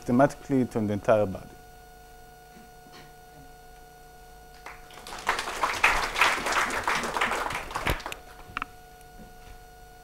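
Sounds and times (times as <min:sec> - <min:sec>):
small audience applause: 0:04.5 - 0:08.5.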